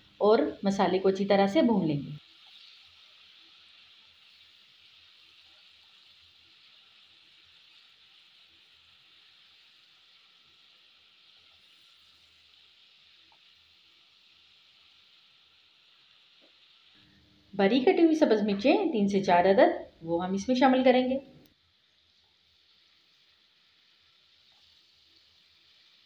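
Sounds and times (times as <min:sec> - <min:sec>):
onions frying in a pan: 0:00.0 - 0:26.0.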